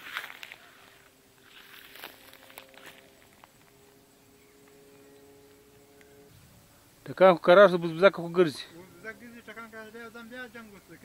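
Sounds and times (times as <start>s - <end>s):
footsteps through dry brush: 0.0s - 3.8s.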